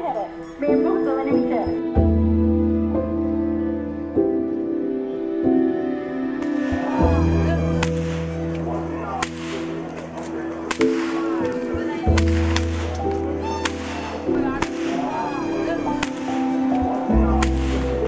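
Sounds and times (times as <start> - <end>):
whips cracking: 7.8 - 8.2, 9.2 - 10.0, 10.7 - 11.3, 12.1 - 14.0, 17.4 - 17.9.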